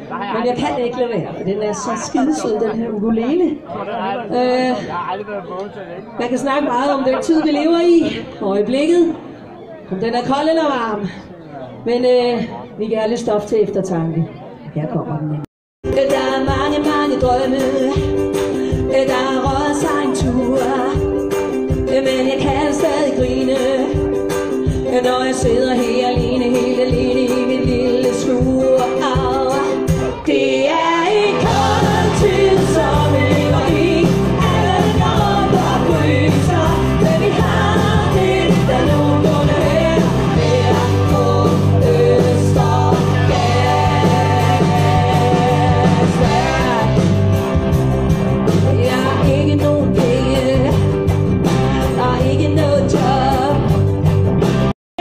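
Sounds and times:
live rock band: 15.8 - 54.7
women singing: 15.9 - 24.2, 24.8 - 47.6, 48.6 - 50.9, 51.7 - 53.8.

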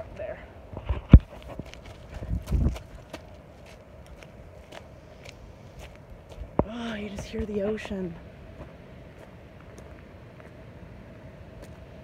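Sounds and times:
footsteps crunching on stony path: 0.7 - 12.0.

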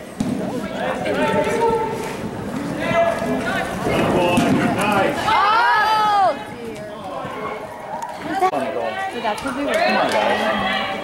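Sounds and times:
spectators talking and calling out: 0.0 - 11.0.

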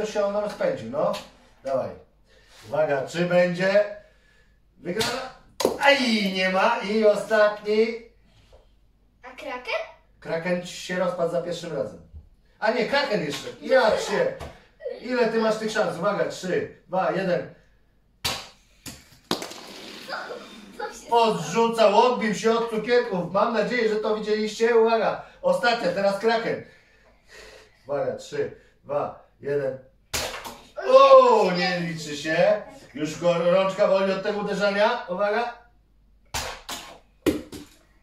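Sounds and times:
quiet steady noise: 0.0 - 38.0
hand slapping toy launcher: 18.2 - 20.1, 30.1 - 30.7.

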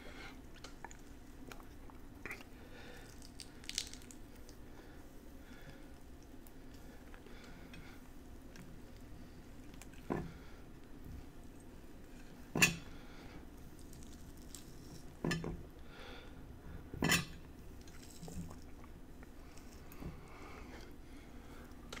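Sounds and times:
hands pulling apart grapefruit: 2.8 - 4.7, 13.6 - 15.2.

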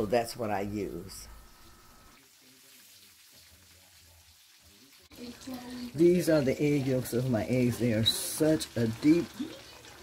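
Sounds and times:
eggs sizzling in a skillet: 1.6 - 10.0.

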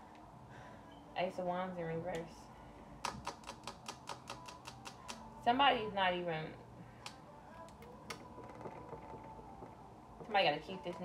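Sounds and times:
faint steady hum: 0.0 - 11.0
cards clicking on a table: 3.0 - 5.2.

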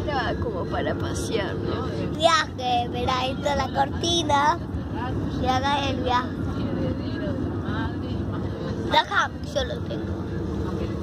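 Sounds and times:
car cabin road rumble: 0.0 - 11.0
faint voices: 0.0 - 11.0.

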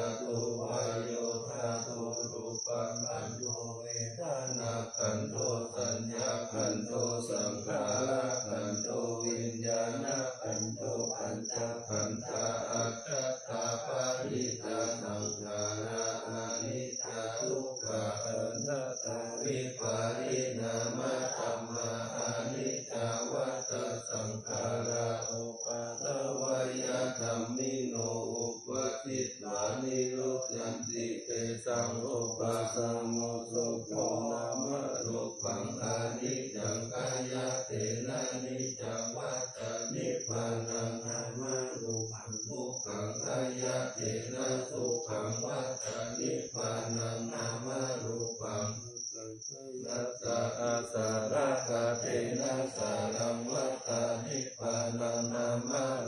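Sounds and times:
group of voices chanting: 0.0 - 56.0.

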